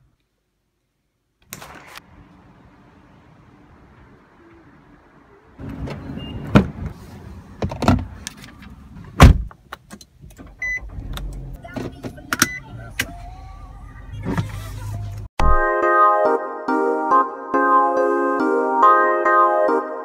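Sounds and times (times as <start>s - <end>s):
car engine starting and rumbling: 1.6s - 15.3s
car door clunks and clicks: 5.6s - 7.0s, 7.6s - 13.1s
car chime beeps: 5.9s - 6.6s, 10.6s - 10.9s, 12.3s - 12.8s.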